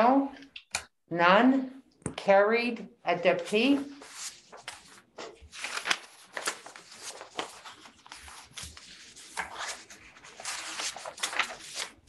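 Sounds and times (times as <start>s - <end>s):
papers rustling: 3.6s - 12.0s.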